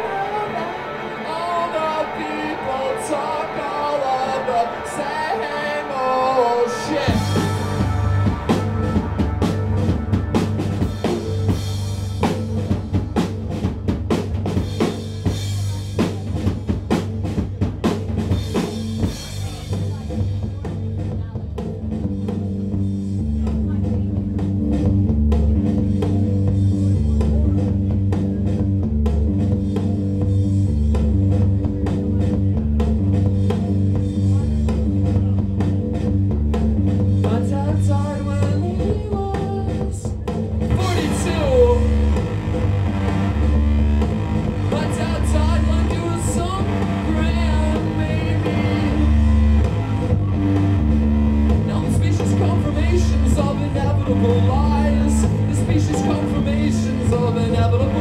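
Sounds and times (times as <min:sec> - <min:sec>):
rock band playing live: 0:00.0 - 0:58.0
drum kit with cymbals: 0:06.2 - 0:58.0.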